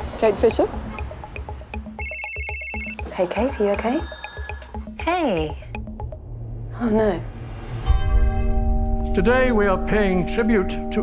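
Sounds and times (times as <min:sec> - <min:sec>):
background music with beat: 0:00.0 - 0:06.2
telephone ringtone: 0:00.8 - 0:06.1.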